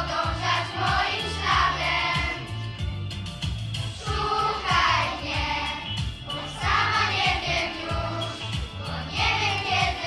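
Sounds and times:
girls choir singing in unison: 0.0s - 2.4s, 4.0s - 10.0s
backing track with beat and bass: 0.0s - 10.0s.

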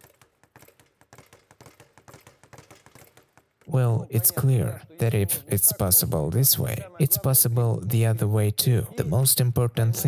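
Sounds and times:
speed bag taps: 0.0s - 3.7s.

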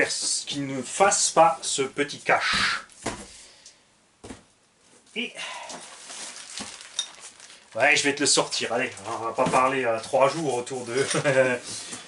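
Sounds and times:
packing rustling: 5.8s - 11.5s.

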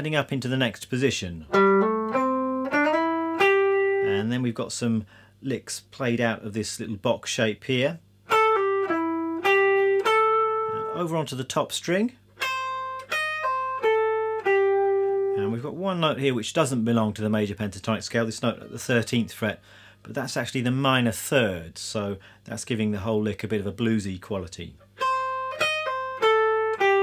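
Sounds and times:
electric guitar single notes: 1.5s - 4.3s, 8.3s - 11.0s, 12.4s - 15.5s, 24.9s - 27.0s.

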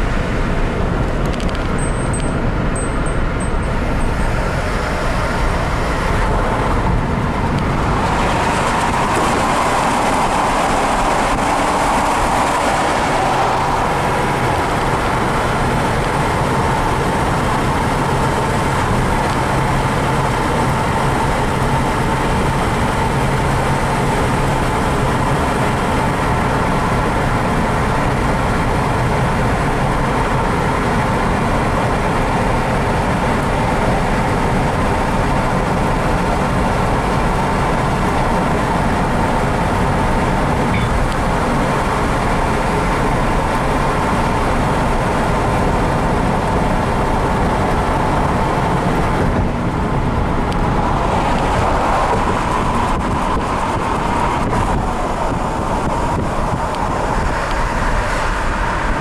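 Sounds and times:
car tyre and engine noise: 0.0s - 59.0s.

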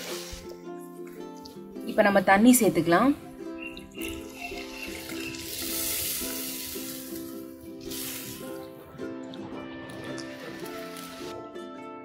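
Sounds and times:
water sizzling in hot oil: 0.0s - 0.5s, 4.0s - 8.7s, 10.0s - 11.4s
background music: 0.0s - 12.0s.

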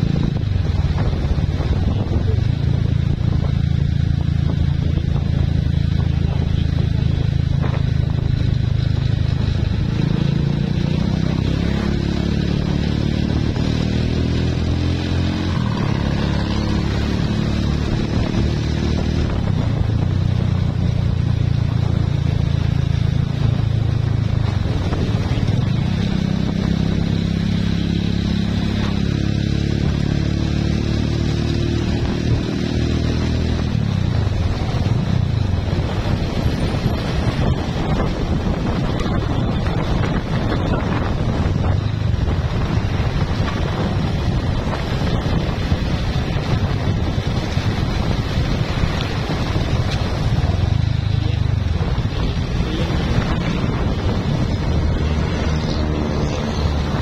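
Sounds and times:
motorcycle running: 0.0s - 57.0s
road noise: 0.0s - 57.0s
wind noise: 0.0s - 57.0s.

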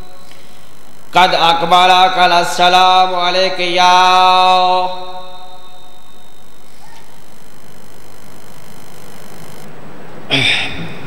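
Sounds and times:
steady hiss: 0.0s - 9.7s
man chanting into microphone: 1.1s - 5.8s.

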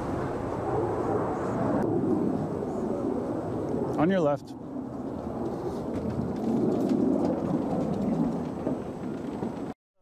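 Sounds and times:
wind on microphone: 0.0s - 9.8s
electric unicycle rolling rumble: 4.6s - 9.8s
tyre rolling onto wooden boardwalk: 5.8s - 9.8s.

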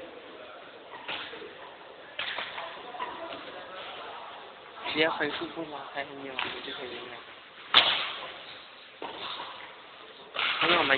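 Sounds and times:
racket hitting shuttlecock: 7.7s - 8.4s.

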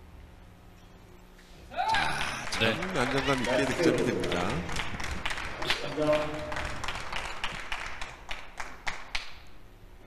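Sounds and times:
audience clapping: 2.0s - 9.5s.

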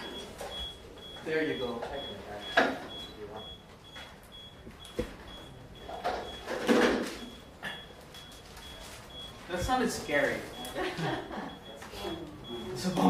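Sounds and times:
high electronic beeping: 0.0s - 13.0s.

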